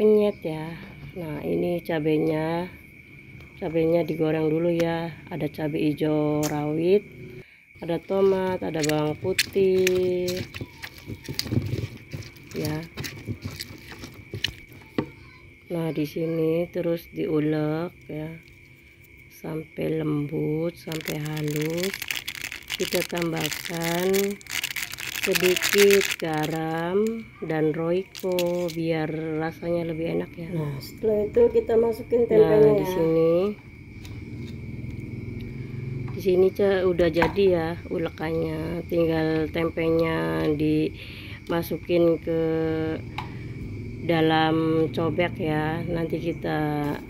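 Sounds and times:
pestle grinding in mortar: 10.2 - 14.7.

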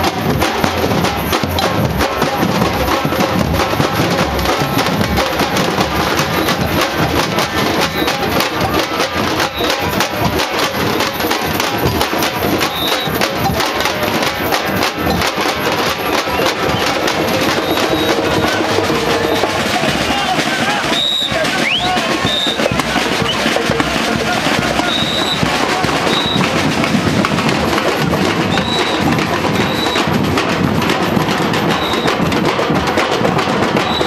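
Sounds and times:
percussion group drumming: 0.0 - 34.0
high whistle blasts: 12.6 - 13.2, 16.4 - 18.6, 20.8 - 23.4, 24.8 - 26.5, 28.5 - 30.1, 31.8 - 32.2.

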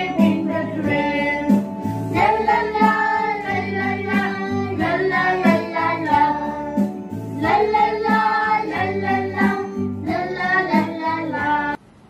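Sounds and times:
children singing: 0.0 - 11.8
instrumental backing music: 0.0 - 11.8.

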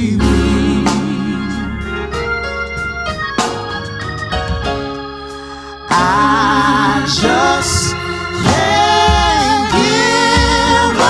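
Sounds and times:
gospel voices singing: 0.0 - 2.2, 5.5 - 11.0
deep bass notes: 0.0 - 11.0.

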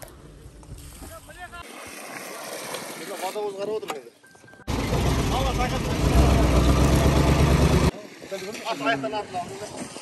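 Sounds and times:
people talking outdoors: 0.3 - 10.0
truck engine rumbling: 4.7 - 7.9.

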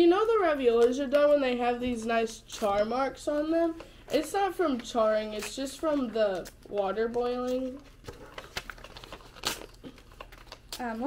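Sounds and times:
paper crinkling and rustling: 0.6 - 11.0.

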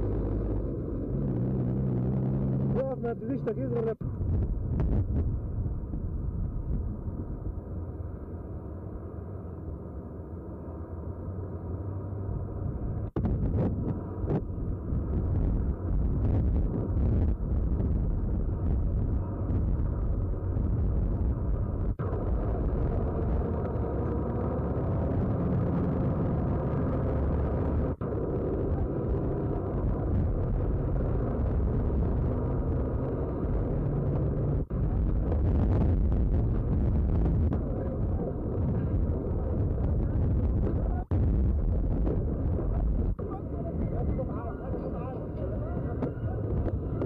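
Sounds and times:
truck engine rumble: 0.0 - 47.0.

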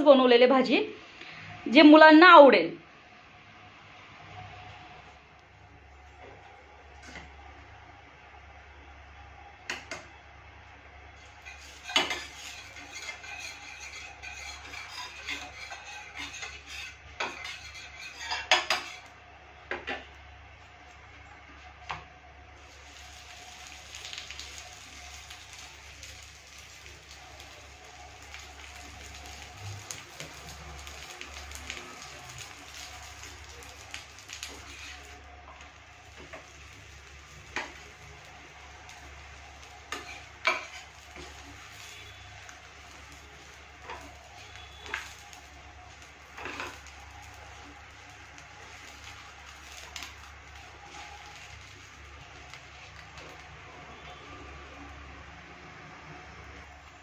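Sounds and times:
faint sizzle: 0.0 - 57.0
spatula scraping griddle: 11.2 - 19.1, 22.8 - 53.4.

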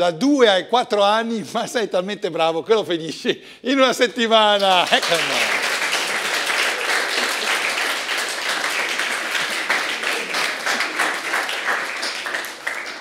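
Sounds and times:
audience applauding: 4.6 - 13.0.

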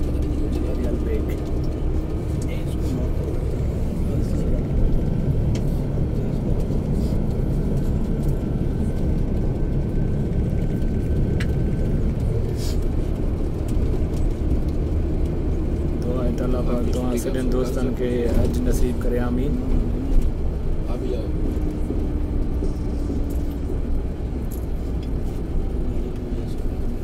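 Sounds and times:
bus engine and tyres rumbling: 0.0 - 27.0.

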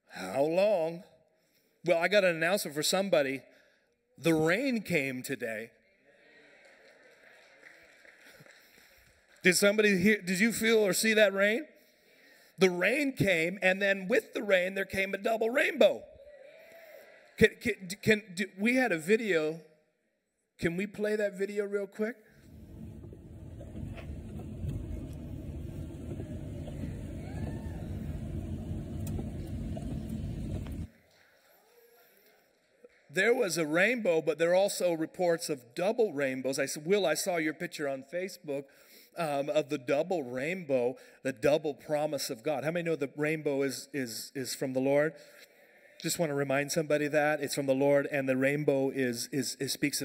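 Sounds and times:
car road noise: 22.4 - 30.9.

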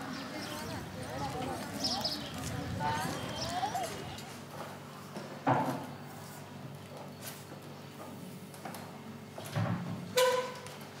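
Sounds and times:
distant voices calling: 0.0 - 4.8
steady background hum: 0.0 - 11.0.

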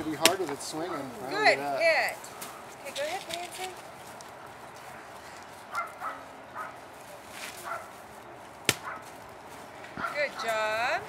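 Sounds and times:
stick striking pinata: 0.2 - 0.5, 8.7 - 8.9.

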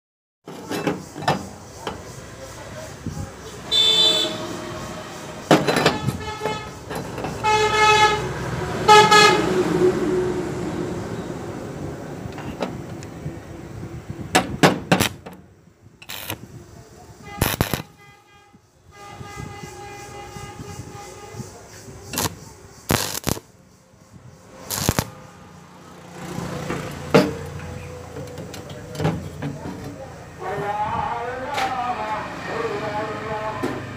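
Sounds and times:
vehicle horns honking: 3.6 - 10.1, 17.2 - 23.4
welding arc bursts: 16.0 - 16.4, 17.4 - 18.0, 22.1 - 23.5, 24.6 - 25.2.

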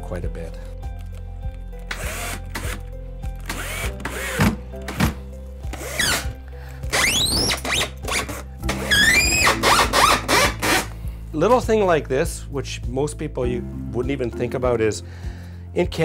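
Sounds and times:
background music: 0.0 - 16.0
cordless drill driving screws: 1.9 - 2.8, 3.4 - 10.9.

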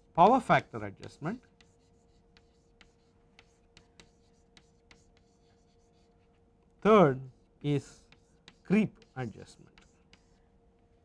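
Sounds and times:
faint steady hum: 0.0 - 11.0
chalk scratching on blackboard: 0.7 - 6.4, 7.1 - 10.4
man speaking: 8.7 - 9.6.

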